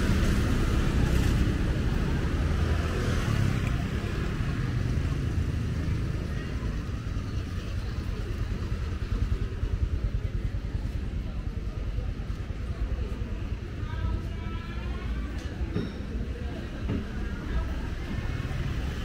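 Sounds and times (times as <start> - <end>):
scooter engine close by: 0.0 - 14.3
traffic rumble: 0.0 - 19.0.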